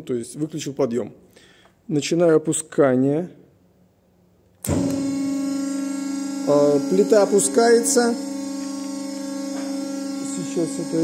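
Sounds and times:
hydraulic press electric hum: 4.6s - 11.0s.

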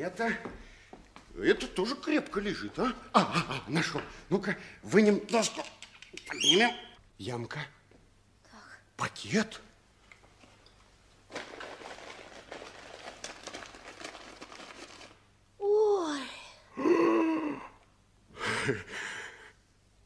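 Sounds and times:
paper wrapping crinkling: 10.4s - 15.2s
person exclaiming in astonishment: 15.6s - 17.8s.

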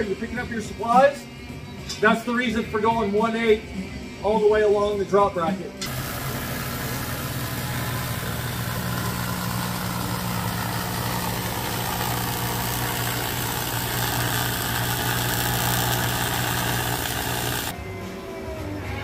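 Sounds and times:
arc welding buzz and hiss: 5.8s - 17.8s.

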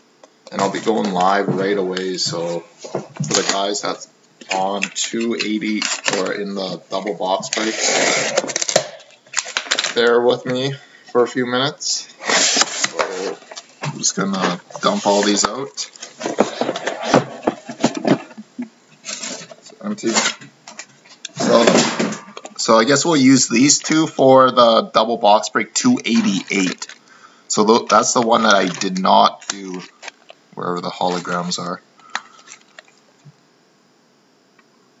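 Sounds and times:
cardboard scraping on cardboard: 7.5s - 8.7s, 12.2s - 13.5s.

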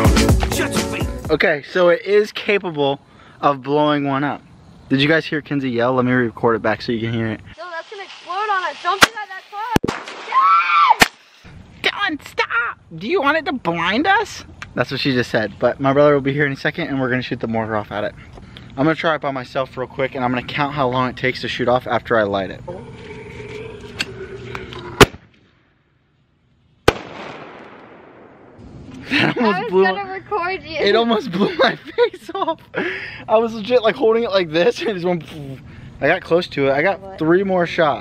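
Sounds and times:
man talking: 0.7s - 7.6s, 18.8s - 22.8s, 29.1s - 30.0s, 30.8s - 38.0s
firework pop: 24.0s - 25.4s.

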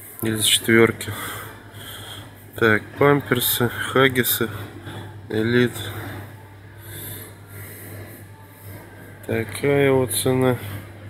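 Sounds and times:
store background hum: 0.0s - 11.0s.

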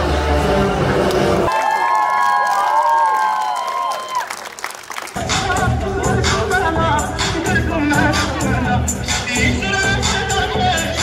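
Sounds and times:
audience clapping: 1.1s - 5.6s
audience cheering and shouting: 1.5s - 4.5s
show music: 4.9s - 11.0s.

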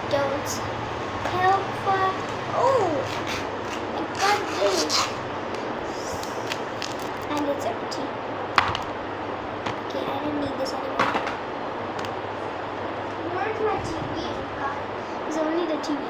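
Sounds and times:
plastic wrapper crinkling: 6.4s - 7.3s.

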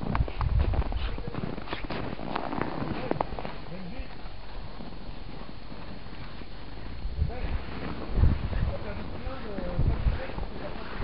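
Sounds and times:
small footsteps in snow: 0.0s - 11.0s
low rumble: 4.6s - 11.0s.

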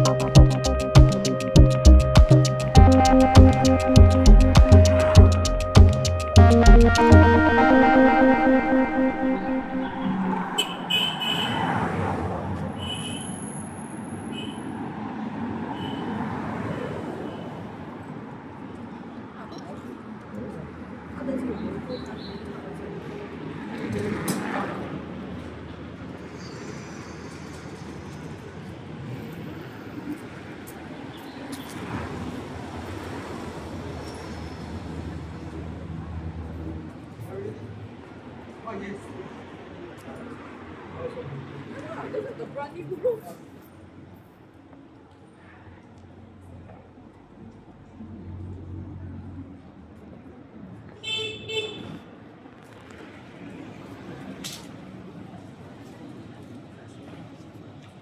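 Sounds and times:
electronic music heavy beat: 0.0s - 10.8s
vehicles and scooters passing: 0.0s - 51.0s, 51.8s - 58.0s
traffic hum: 0.0s - 58.0s.

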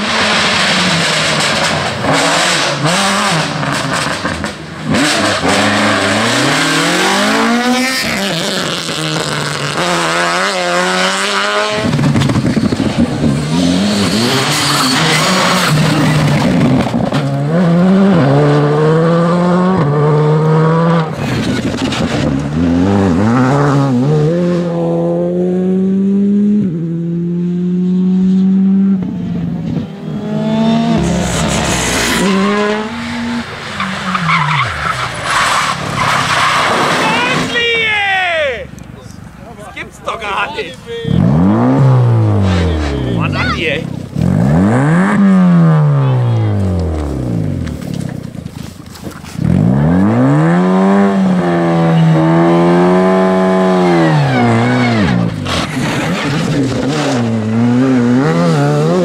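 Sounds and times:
rally car engines revving: 0.0s - 37.6s, 38.5s - 59.0s.

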